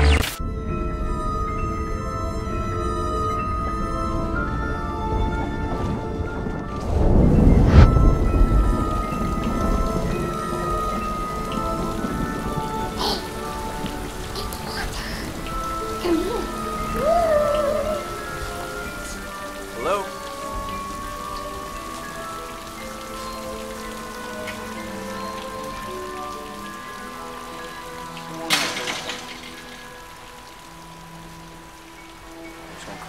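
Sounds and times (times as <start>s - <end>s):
rain falling on wet pavement: 0.1s - 33.0s
soft background music: 0.4s - 33.0s.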